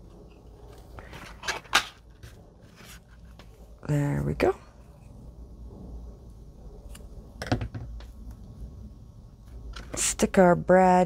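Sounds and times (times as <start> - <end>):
soft paper rustle: 2.0 - 3.7.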